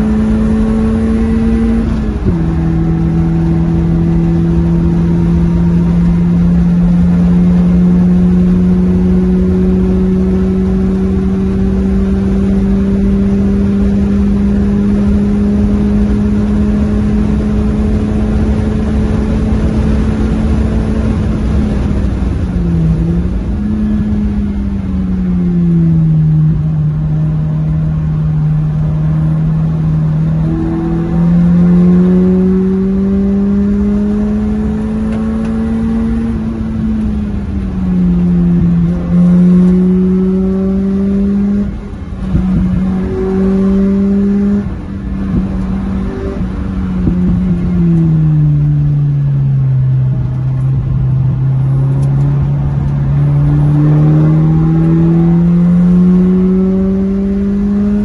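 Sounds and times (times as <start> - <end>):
car engine revving: 0.0 - 58.0
wind and road noise: 0.0 - 58.0.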